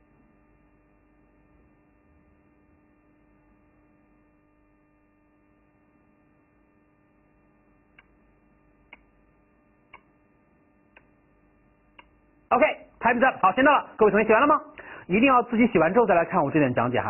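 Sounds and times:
faint electrical hum: 0:00.0 - 0:17.0.

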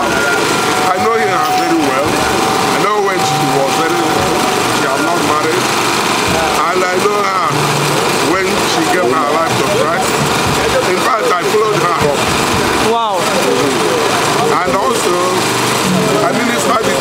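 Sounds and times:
man speaking into a microphone: 0:00.0 - 0:05.7.

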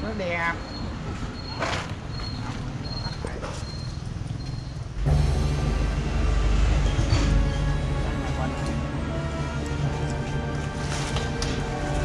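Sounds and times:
faint outdoor background noise: 0:00.0 - 0:12.0
bass-heavy background music: 0:05.0 - 0:12.0.

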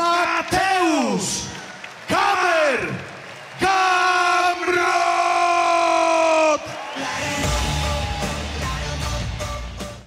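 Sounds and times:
crowd cheering: 0:00.0 - 0:09.5.

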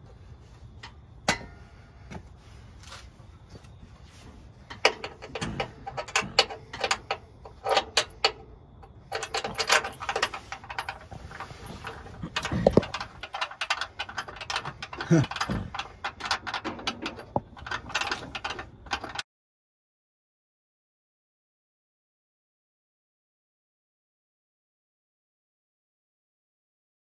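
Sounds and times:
metallic clicks and clinks: 0:04.7 - 0:19.2.

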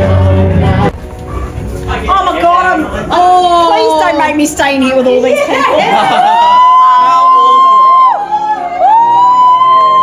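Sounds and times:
person singing karaoke: 0:00.0 - 0:01.4.

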